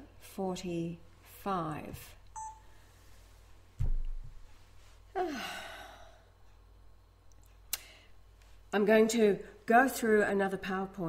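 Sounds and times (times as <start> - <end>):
short electronic beep: 2.4 - 2.6.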